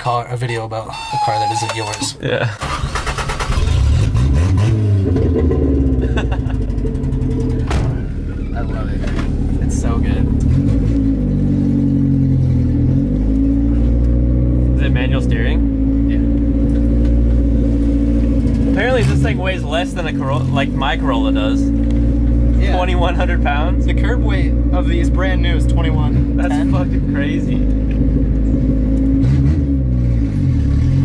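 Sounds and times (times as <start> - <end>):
car engine with open exhaust: 2.2 - 31.0.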